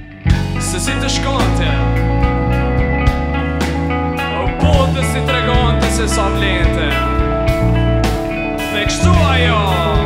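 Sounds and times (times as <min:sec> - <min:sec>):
electric bass line: 0:00.0 - 0:10.0
electric guitars: 0:00.0 - 0:10.0.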